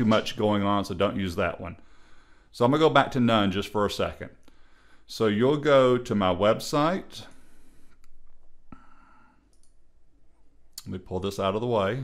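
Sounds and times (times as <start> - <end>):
computer mouse click: 9.5 - 9.8.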